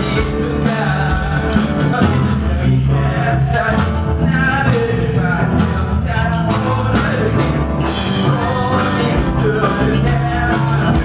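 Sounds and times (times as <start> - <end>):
person singing: 0.0 - 11.0
rock band playing: 0.0 - 11.0.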